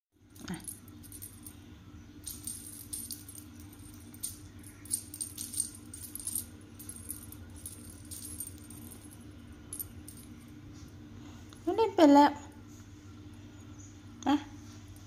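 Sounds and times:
steady low hum: 0.2s - 15.0s
small jingle bell jingling: 0.4s - 1.6s, 2.2s - 10.5s.

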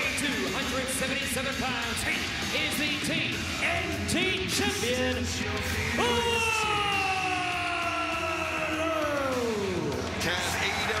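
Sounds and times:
crowd noise: 0.0s - 11.0s
man announcing drawn-out oh: 6.0s - 9.8s.

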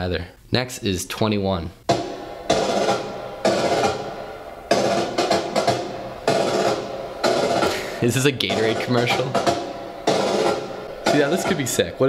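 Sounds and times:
drum and snare hits ringing: 1.8s - 12.0s.

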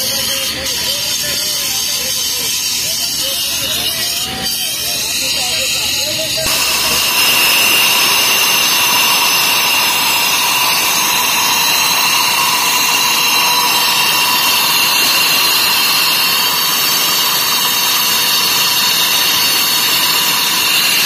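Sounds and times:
angle grinder cutting concrete: 0.0s - 21.0s.

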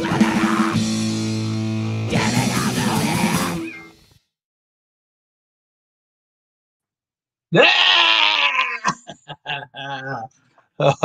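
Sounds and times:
man yelling: 0.0s - 0.8s, 2.1s - 3.6s, 7.5s - 10.3s.

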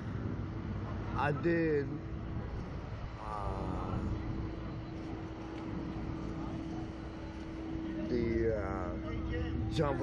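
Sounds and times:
mid-pitched hum: 0.0s - 10.0s.

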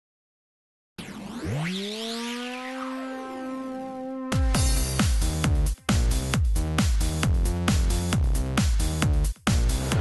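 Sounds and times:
synthesizer tone gliding up: 1.0s - 4.6s.

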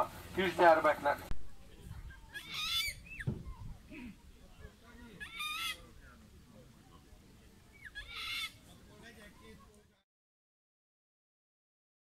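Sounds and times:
waterbird calling: 2.2s - 3.6s, 4.9s - 6.0s, 7.6s - 8.7s.

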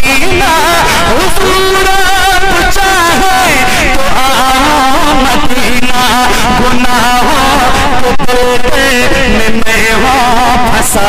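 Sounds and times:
man singing into microphone: 0.0s - 11.0s.

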